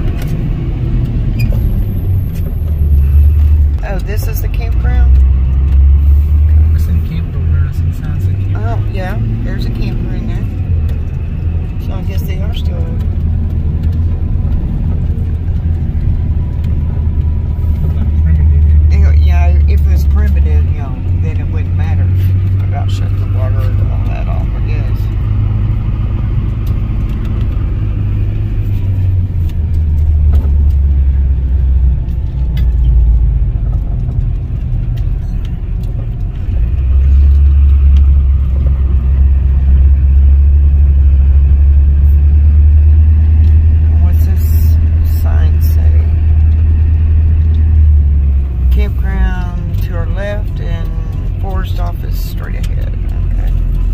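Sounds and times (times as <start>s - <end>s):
car engine and tyre rumble: 0.0s - 53.9s.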